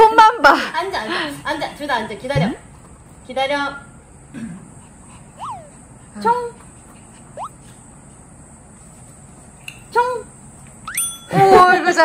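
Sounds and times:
dog whining: 0:05.4 - 0:05.9.

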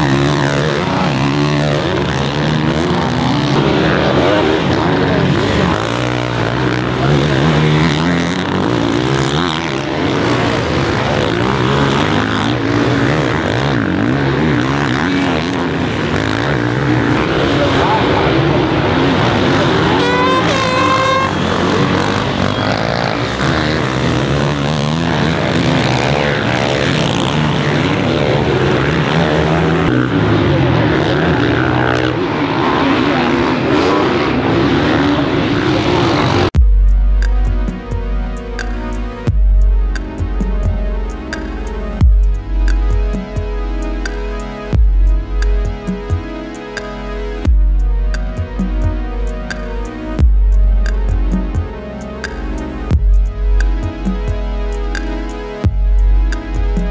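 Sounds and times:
motocross bike engines revving: 0:00.0 - 0:56.9.

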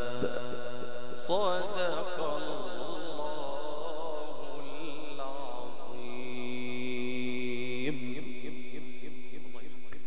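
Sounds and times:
man reciting a long note: 0:00.0 - 0:10.0.

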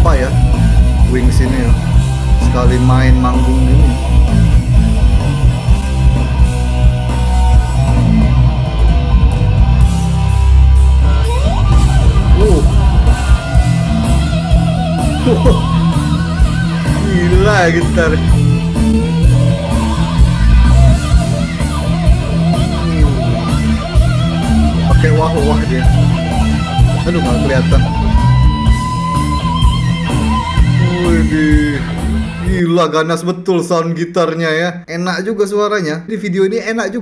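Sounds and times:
electric guitar: 0:00.0 - 0:32.6
bass guitar: 0:00.0 - 0:32.8
drums: 0:00.0 - 0:32.8.

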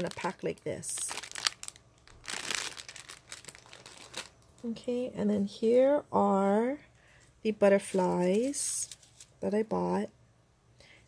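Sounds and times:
plastic packet crinkling: 0:00.0 - 0:04.6.

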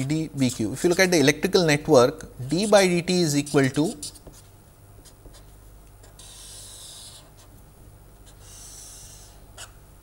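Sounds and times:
marker writing on paper: 0:03.4 - 0:07.6, 0:08.2 - 0:09.7.

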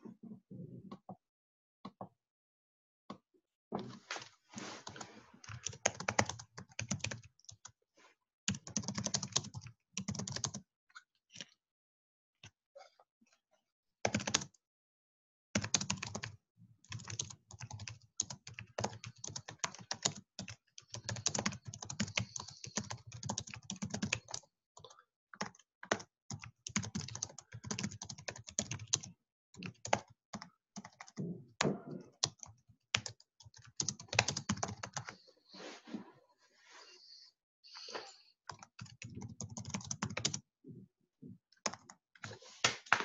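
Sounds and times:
typing on computer keyboard: 0:05.5 - 0:07.7, 0:08.5 - 0:10.6, 0:14.1 - 0:14.5, 0:15.6 - 0:31.2, 0:32.2 - 0:35.2, 0:38.5 - 0:40.4, 0:41.6 - 0:42.0.

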